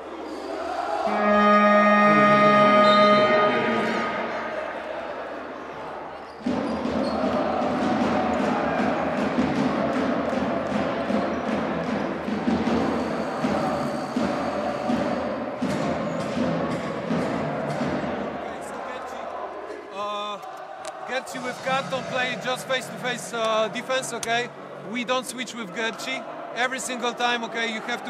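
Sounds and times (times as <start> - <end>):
crowd chatter: 0.0 - 28.0
held multi-pitch horn tone: 1.0 - 5.0
arena music: 1.1 - 5.2.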